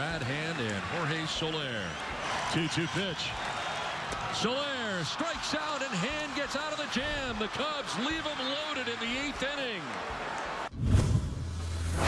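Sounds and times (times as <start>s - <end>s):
stadium crowd noise: 0.0s - 10.8s
whoosh: 10.7s - 12.0s.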